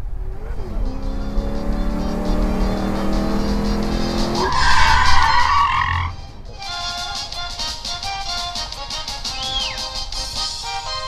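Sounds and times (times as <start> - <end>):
car engine revving: 0.0 - 6.7
tyres squealing: 0.4 - 11.0.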